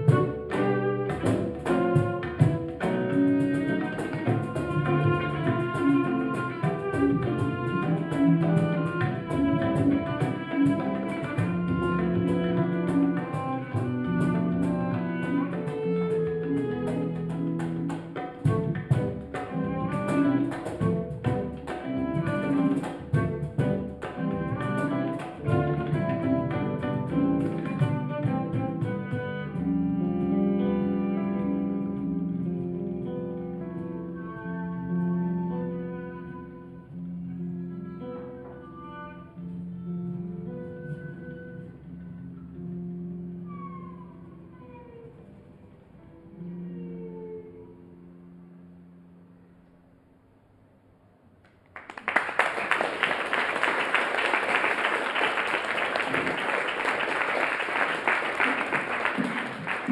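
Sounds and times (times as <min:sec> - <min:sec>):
tabla strokes: 0:00.0 - 0:29.2
bowed cello: 0:00.0 - 0:49.4
guitar: 0:00.0 - 0:50.1.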